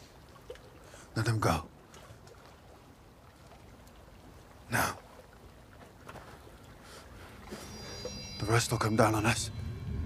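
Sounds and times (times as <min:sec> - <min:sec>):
thin high sustained tones: 0:07.4 - 0:10.0
low rumbling hum: 0:07.6 - 0:10.0.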